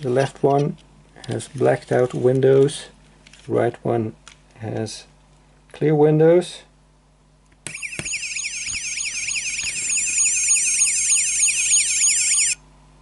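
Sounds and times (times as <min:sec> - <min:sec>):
toy police siren warbling: 0:07.7 - 0:12.6.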